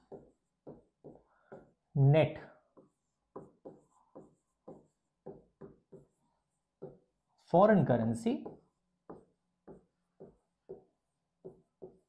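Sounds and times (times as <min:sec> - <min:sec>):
marker pen on whiteboard: 0:00.0 - 0:12.0.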